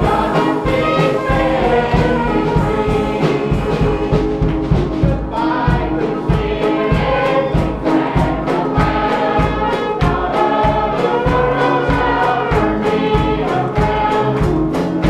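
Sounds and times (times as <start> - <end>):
choir singing gospel: 0.0 - 15.0
instrumental accompaniment with beat: 0.0 - 15.0.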